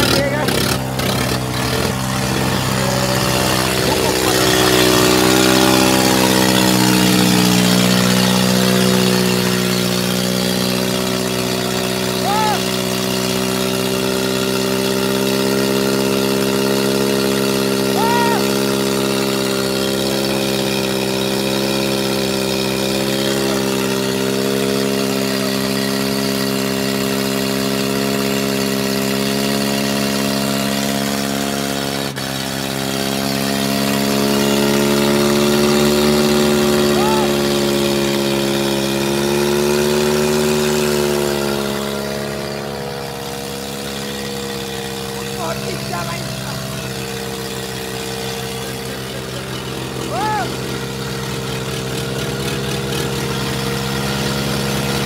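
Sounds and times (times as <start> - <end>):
tractor diesel engines straining: 0.0 - 55.0.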